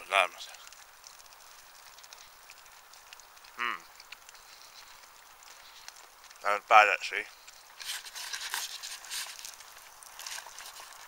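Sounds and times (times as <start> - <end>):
low steady hiss: 0.0 - 11.0
man chewing: 0.6 - 6.4, 7.3 - 11.0.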